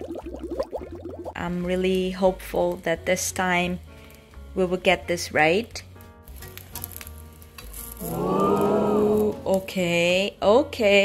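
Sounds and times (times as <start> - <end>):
quiet background music: 0.0 - 11.0
batter sizzling in a frying pan: 1.7 - 9.9.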